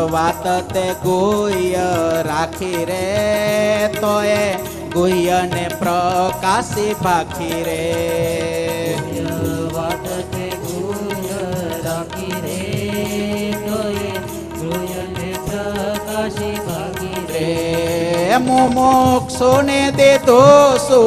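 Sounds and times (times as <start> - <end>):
harmonium: 0.0 - 21.0
tabla rhythm: 0.0 - 21.0.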